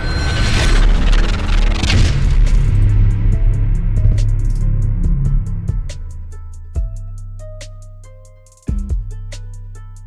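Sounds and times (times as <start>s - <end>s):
booming hits: 0.0s - 6.9s.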